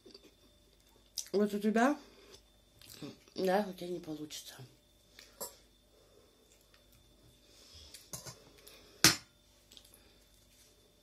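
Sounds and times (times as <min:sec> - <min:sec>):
quiet chewing: 0:06.4 - 0:07.2, 0:09.6 - 0:10.8.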